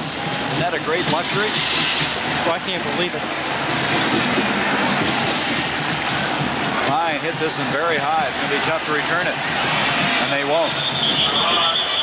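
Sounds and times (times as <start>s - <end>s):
large stadium crowd noise: 0.0s - 12.0s.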